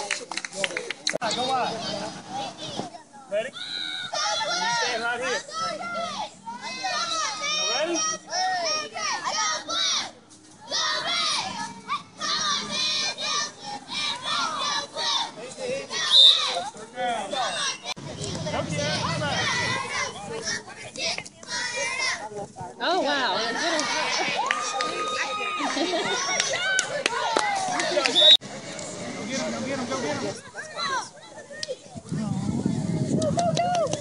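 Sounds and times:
children shouting: 3.6s - 15.3s, 23.5s - 28.2s.

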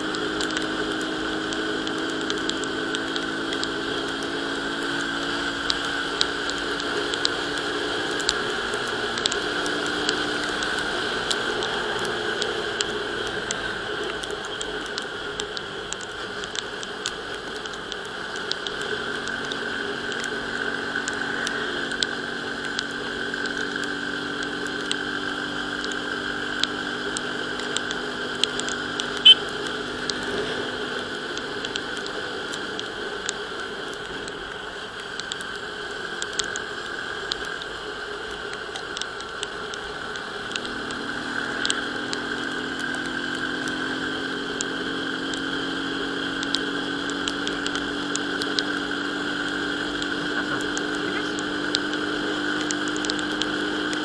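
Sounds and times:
motorcycle engine running: 0.0s - 38.6s, 39.2s - 54.0s
wind and tyre noise: 0.0s - 54.0s
sharp ticks: 0.1s - 54.0s.

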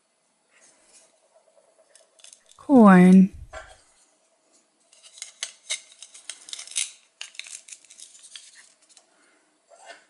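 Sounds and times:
plastic toy pieces clicking: 5.0s - 9.0s.

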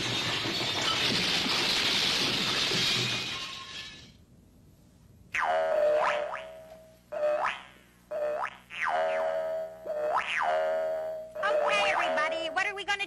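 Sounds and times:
twanging boing sound effect: 5.4s - 12.2s.

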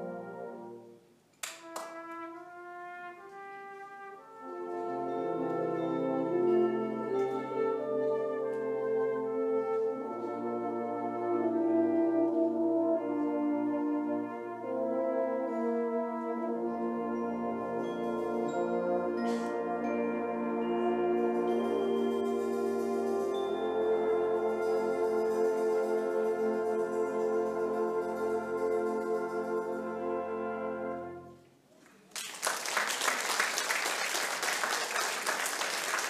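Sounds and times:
brass band playing chords: 0.0s - 31.4s.

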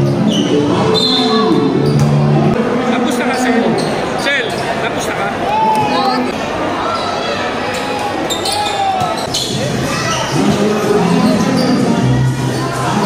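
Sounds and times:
spectators chattering and shouting: 0.0s - 13.0s.

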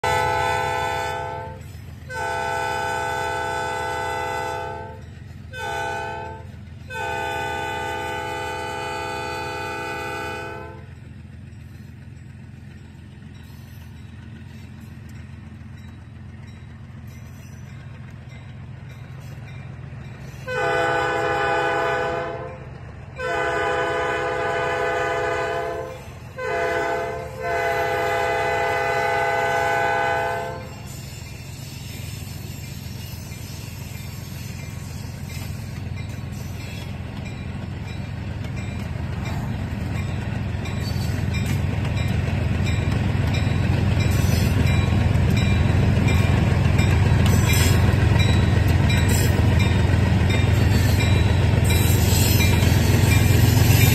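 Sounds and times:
locomotive air horn: 0.0s - 10.9s, 20.4s - 22.6s, 23.2s - 31.0s.

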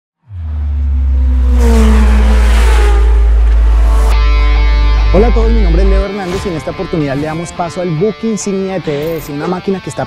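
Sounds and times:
deep bass rumble: 0.2s - 7.2s
intro music: 0.7s - 9.9s.

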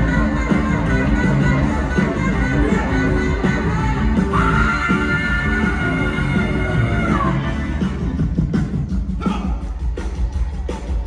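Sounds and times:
drums: 0.0s - 11.0s
live rock and roll band: 0.0s - 11.0s.

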